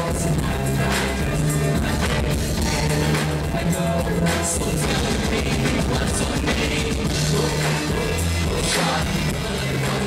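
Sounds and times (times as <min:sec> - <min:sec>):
bass line: 0:00.0 - 0:10.0
drum kit with cymbals: 0:00.0 - 0:10.0
electric guitars: 0:00.0 - 0:10.0
keyboard: 0:00.0 - 0:10.0.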